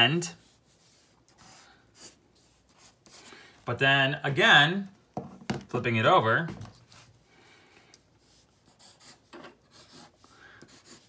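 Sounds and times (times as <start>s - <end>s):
pencil scratching on paper: 0.3s - 3.3s, 8.2s - 11.0s.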